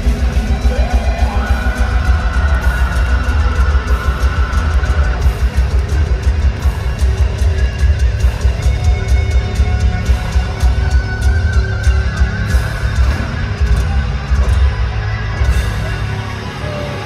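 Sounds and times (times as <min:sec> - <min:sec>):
distorted electric guitars: 0:00.0 - 0:17.0
rapid dense drumming: 0:00.0 - 0:17.0.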